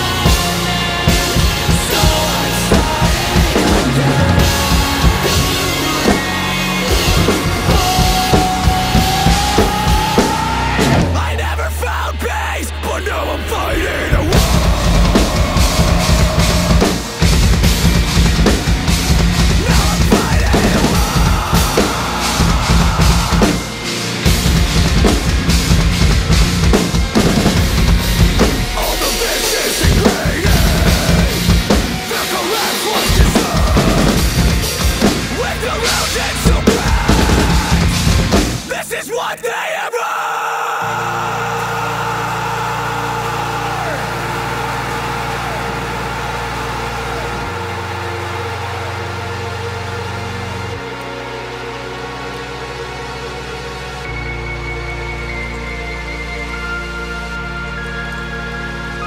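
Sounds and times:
drum kit played hard: 0:00.0 - 0:11.8, 0:12.7 - 0:39.0, 0:40.9 - 0:50.1
metal backing track: 0:00.0 - 0:56.8
heavy distorted metal music: 0:00.0 - 0:59.0.

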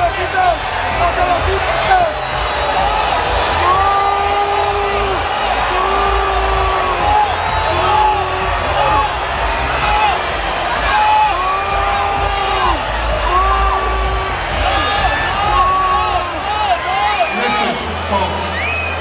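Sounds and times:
crowd cheering and shouting: 0:00.0 - 0:19.0.

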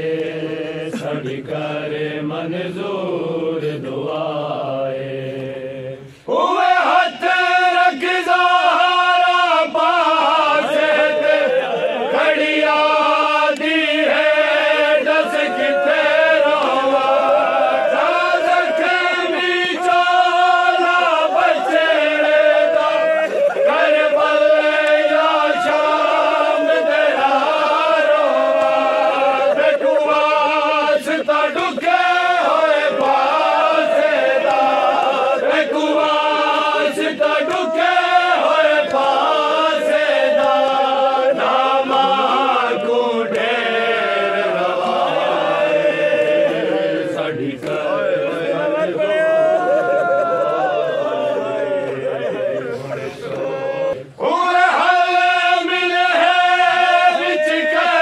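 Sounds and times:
men chanting in unison: 0:00.0 - 0:58.0.

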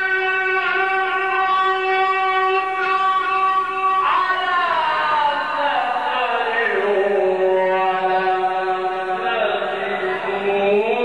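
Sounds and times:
man reciting melodically into microphone: 0:00.0 - 0:11.0.

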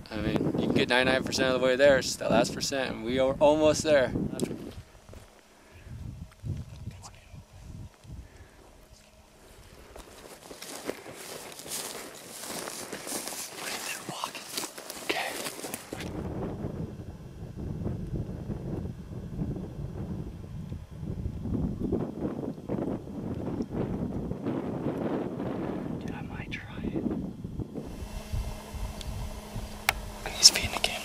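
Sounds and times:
wind buffeting microphone: 0:00.0 - 0:13.3, 0:15.6 - 0:31.0
close rustling and scuffing: 0:09.0 - 0:16.2.

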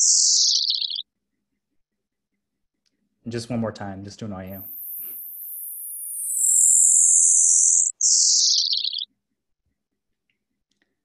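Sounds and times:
high whistle gliding downward: 0:04.6 - 0:08.9.

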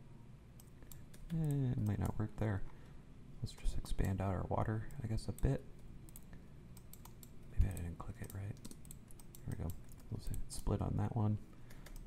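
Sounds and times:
computer keyboard keystrokes: 0:00.6 - 0:02.2, 0:04.9 - 0:10.8, 0:11.7 - 0:12.0.

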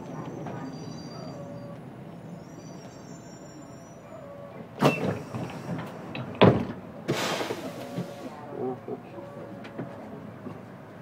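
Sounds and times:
bus engine idling: 0:00.0 - 0:11.0
pneumatic doors thumping shut: 0:04.8 - 0:08.2.

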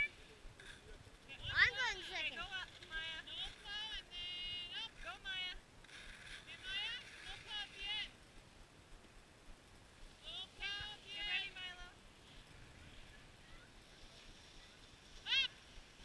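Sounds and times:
child making wordless sounds: 0:01.4 - 0:02.3.

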